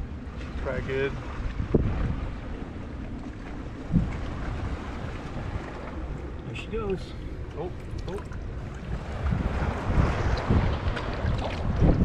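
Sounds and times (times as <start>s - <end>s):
water washing against boat hull: 0.0s - 12.0s
wind rumbling on microphone: 0.0s - 12.0s.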